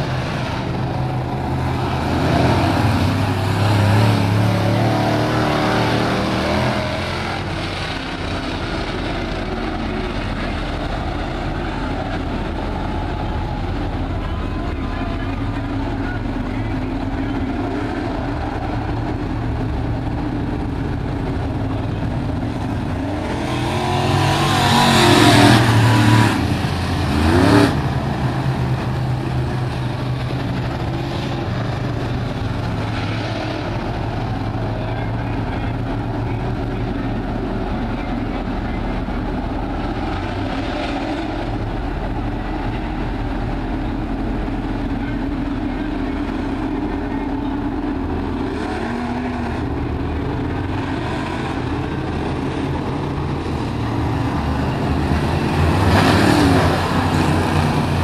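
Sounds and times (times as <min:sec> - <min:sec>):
race car engines roaring: 0:00.0 - 0:58.0.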